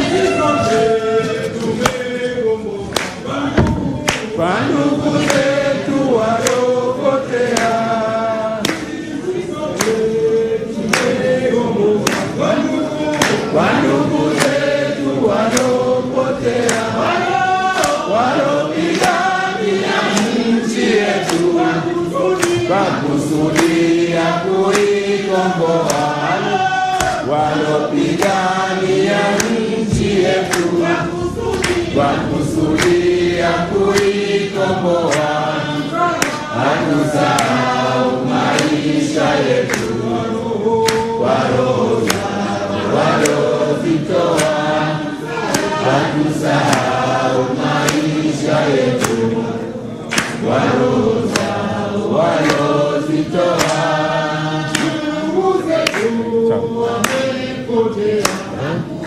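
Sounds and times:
people singing in chorus: 0.0s - 59.0s
rhythmic hand clapping: 0.0s - 59.0s.

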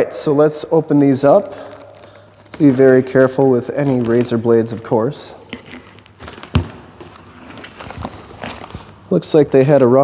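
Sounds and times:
cardboard and tape rustling: 1.2s - 10.0s.

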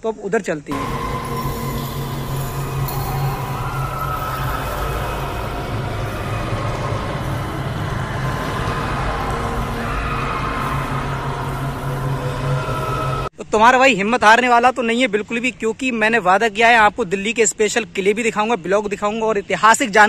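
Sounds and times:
low drone with held tones: 0.7s - 13.3s.

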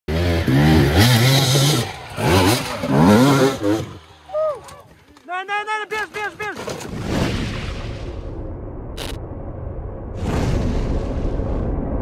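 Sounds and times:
dirt bike engine revving: 0.1s - 4.3s.

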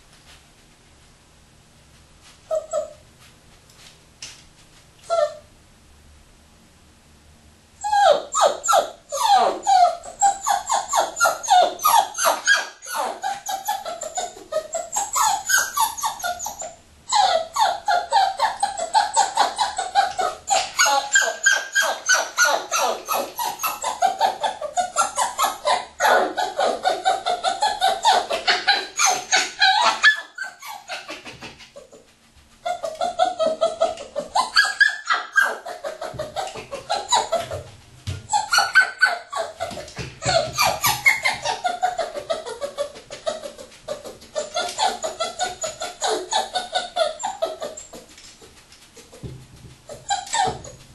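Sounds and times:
puppy yipping and whining: 2.5s - 3.0s, 5.0s - 5.5s, 7.8s - 49.3s, 49.9s - 50.9s.

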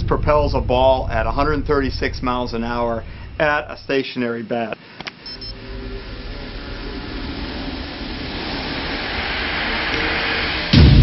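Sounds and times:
loud deep hit: 0.0s - 3.5s, 6.3s - 11.0s
rising hiss: 5.5s - 11.0s.

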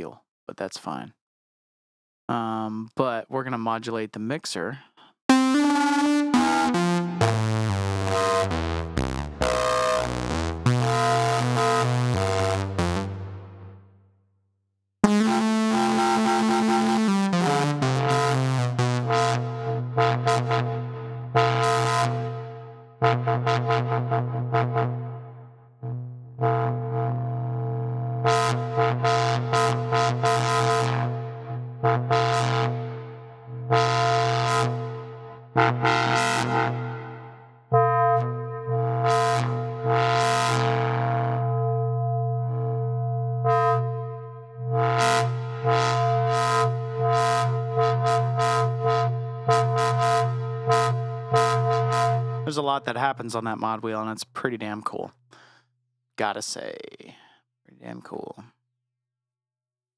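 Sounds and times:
bright plucky synth notes: 5.3s - 13.5s, 15.0s - 20.8s
synth low tone: 5.3s - 13.8s, 15.0s - 32.2s, 35.6s - 52.8s.

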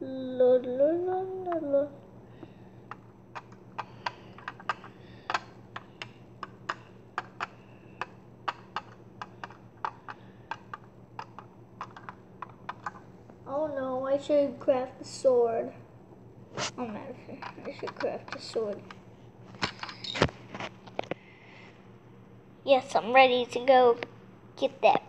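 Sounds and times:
child humming: 0.0s - 2.6s
plastic bricks clicking: 2.9s - 13.0s, 17.4s - 19.0s.

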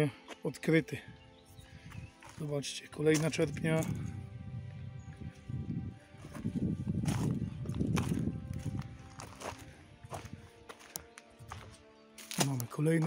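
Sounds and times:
background music: 0.0s - 13.0s
footsteps on rough ground: 0.0s - 13.0s.

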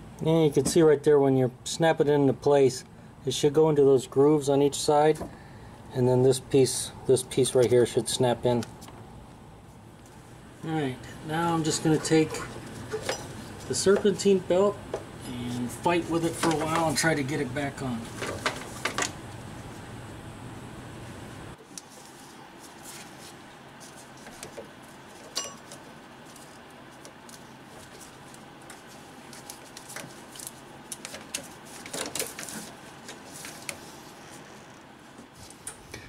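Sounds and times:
ringing metal clink: 25.4s - 25.7s.

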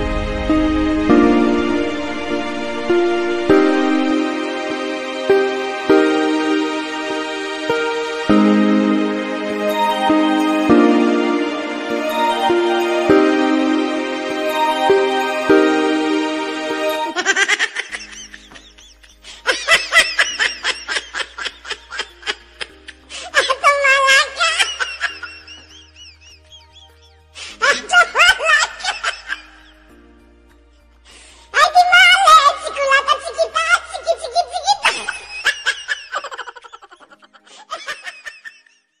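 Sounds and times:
laughter: 17.1s - 29.9s, 34.1s - 39.0s.

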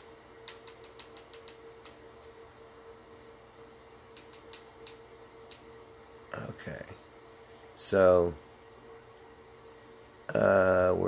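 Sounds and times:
faint steady hum: 0.0s - 11.0s
remote control button clicks: 4.1s - 5.6s.

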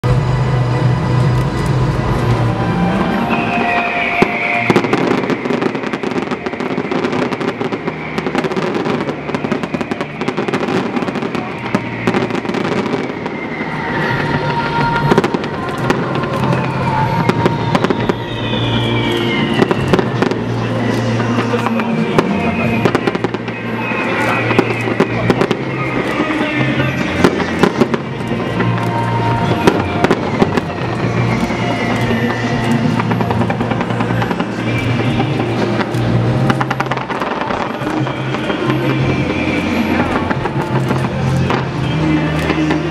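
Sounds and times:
fireworks bursting and crackling: 0.0s - 42.9s
music: 0.0s - 42.9s.

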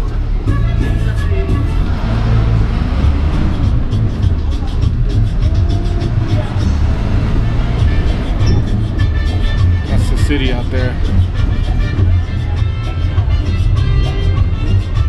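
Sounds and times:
bus engine and road noise: 0.0s - 15.0s
indistinct voices: 0.0s - 15.0s
music with steady beat: 0.0s - 15.0s.

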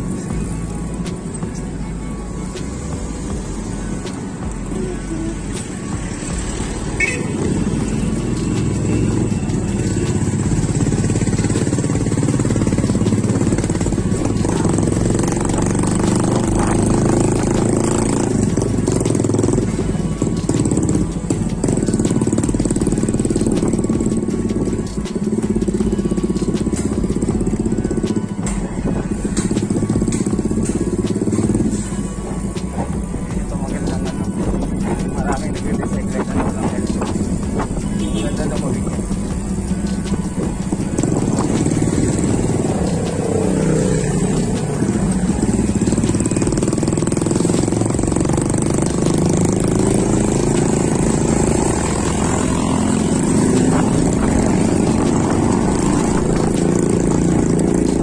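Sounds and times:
background music: 0.0s - 58.0s
city traffic: 0.0s - 58.0s
motorcycle engines running: 0.0s - 58.0s.

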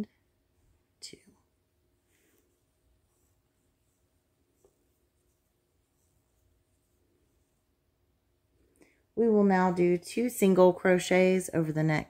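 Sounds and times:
yarn rustling on crochet hook: 0.0s - 12.0s.

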